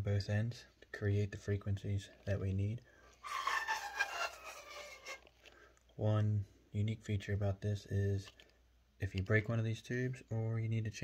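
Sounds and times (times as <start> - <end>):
breath noise: 2.8 - 6.6.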